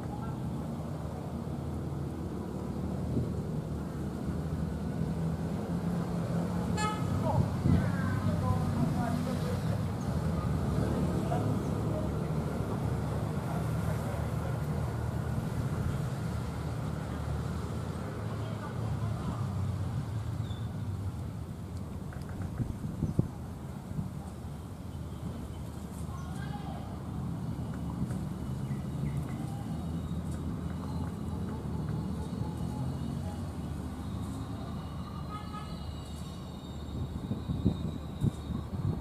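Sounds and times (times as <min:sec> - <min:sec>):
train horn toot: 0:06.8 - 0:07.2, 0:35.1 - 0:36.4
locomotive engine drone: 0:26.9 - 0:39.0.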